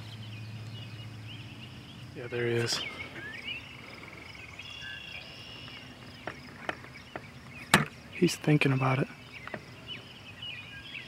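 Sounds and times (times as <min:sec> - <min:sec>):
high chirps of small animals: 0:00.0 - 0:11.0.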